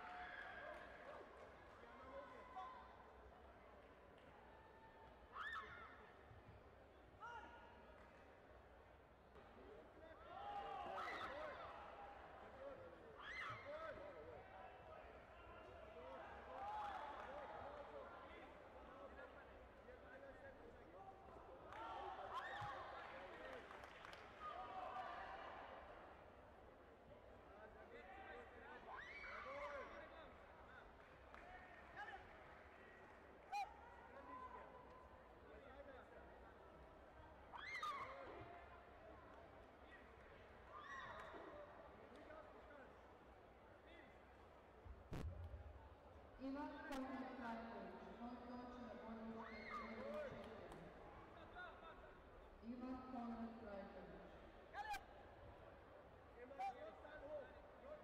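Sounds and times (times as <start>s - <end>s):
sports hall background: 0.0s - 58.0s.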